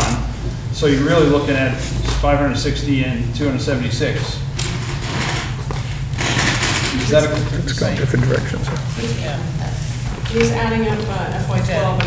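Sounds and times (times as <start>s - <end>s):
steady low hum: 6.8s - 11.4s.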